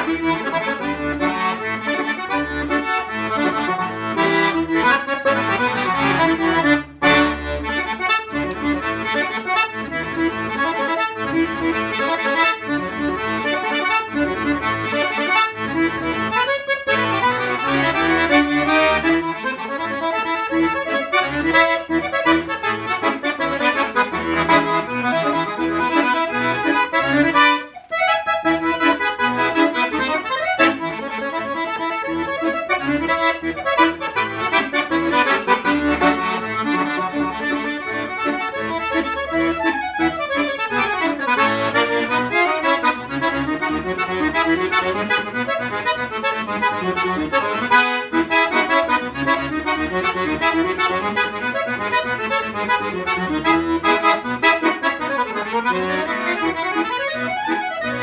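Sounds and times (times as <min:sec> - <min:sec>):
piano accordion playing: 0:00.0 - 0:58.0.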